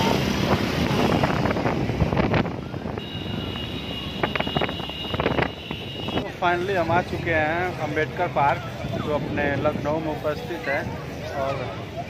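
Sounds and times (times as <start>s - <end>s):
road traffic: 0.0s - 12.0s
wind rushing over microphone: 0.0s - 12.0s.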